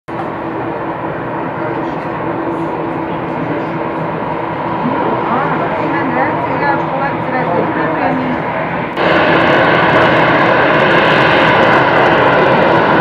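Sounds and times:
jet engine taxiing: 0.1 - 13.0
indistinct voices: 1.5 - 9.0.

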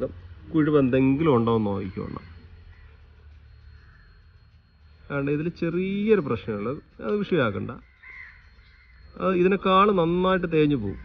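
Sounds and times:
crow cawing: 1.7 - 4.2, 7.8 - 9.2
man speaking: 9.2 - 11.0.

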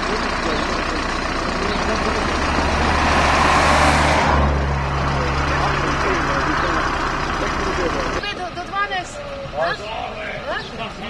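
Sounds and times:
people talking: 0.0 - 2.7, 5.0 - 11.0
vehicle engine running: 0.0 - 11.0.

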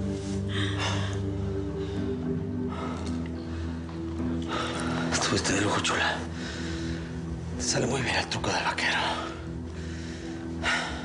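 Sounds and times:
low droning score: 0.0 - 11.0.

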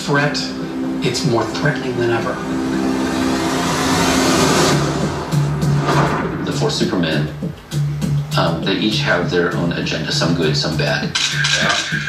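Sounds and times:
dramatic orchestral score: 0.2 - 7.6
low held note: 0.5 - 8.2
rushing whoosh effect: 2.4 - 8.2.

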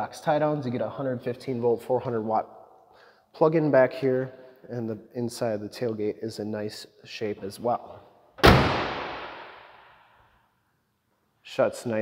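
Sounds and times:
pickup tailgate slamming shut: 8.4 - 9.0.

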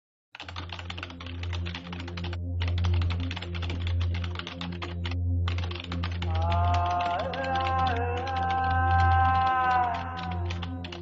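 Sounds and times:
rapid keyboard typing: 0.4 - 11.0.

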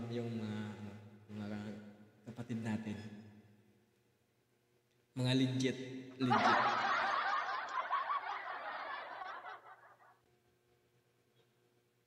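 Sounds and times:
dense laughter: 6.3 - 10.2.

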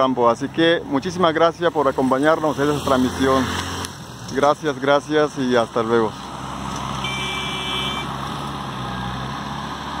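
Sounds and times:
high beep: 7.0 - 8.1.

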